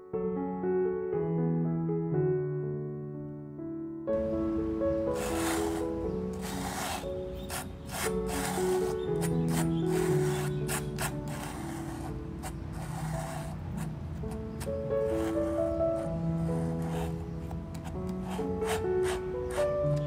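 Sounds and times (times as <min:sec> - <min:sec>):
soft background music: 0:00.0 - 0:20.0
palette knife scraping canvas: 0:05.1 - 0:20.0.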